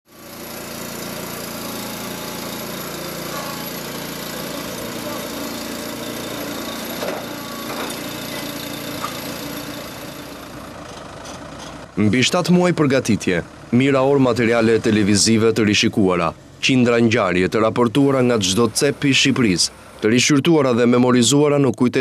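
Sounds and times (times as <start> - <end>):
small engine running: 0.1 - 21.4.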